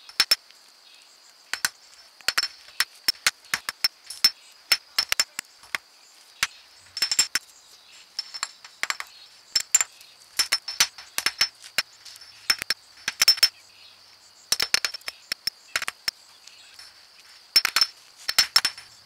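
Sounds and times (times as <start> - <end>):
small hammer tapping on rock: 1.5 - 3.9.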